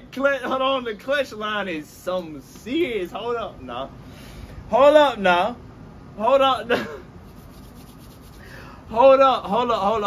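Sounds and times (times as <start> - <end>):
hands rubbing skin and clothing: 7.2 - 8.5.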